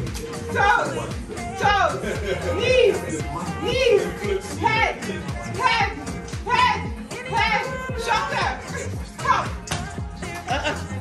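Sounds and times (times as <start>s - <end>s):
music with bass-drum beat: 0.0s - 11.0s
women shouting and cheering: 0.2s - 11.0s.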